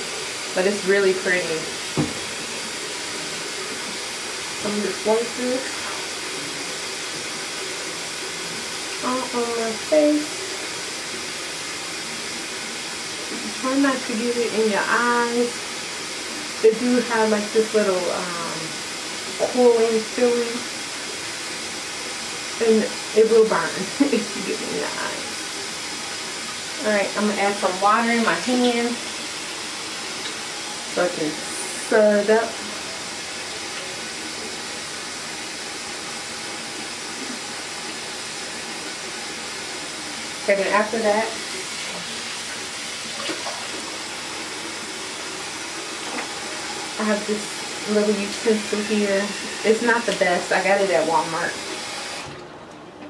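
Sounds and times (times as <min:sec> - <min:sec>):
sink tap running: 0:00.0 - 0:52.5
light knocks on counter: 0:02.0 - 0:02.2.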